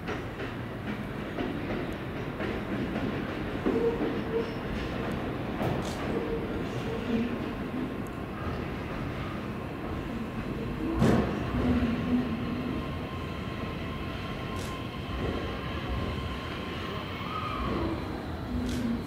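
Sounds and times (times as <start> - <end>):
electric train braking to a stop: 12.2 - 19.0.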